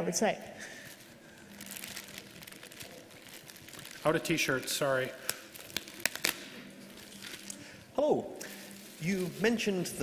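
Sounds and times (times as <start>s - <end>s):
plastic bag crinkling: 0.7s - 7.8s, 8.4s - 10.0s.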